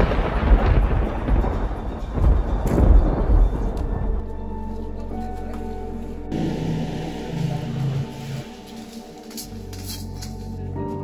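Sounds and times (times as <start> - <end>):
deep thunder-like rumble: 0.0 - 4.6
film score music: 0.0 - 11.0.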